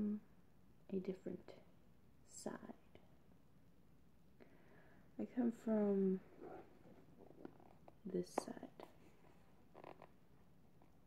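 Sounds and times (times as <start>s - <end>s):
woman speaking: 5.2s - 6.3s, 8.1s - 8.8s
soft handling sounds: 6.1s - 11.0s.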